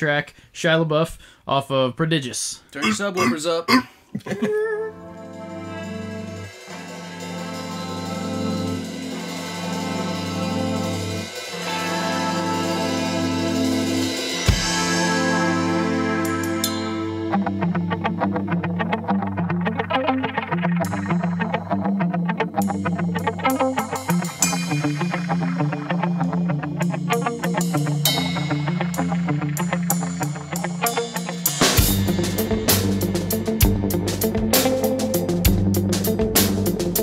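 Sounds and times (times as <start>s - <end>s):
electric guitar busy pattern: 2.8s - 3.9s, 17.8s - 31.4s
drums and cymbals: 6.3s - 15.4s, 27.1s - 37.0s.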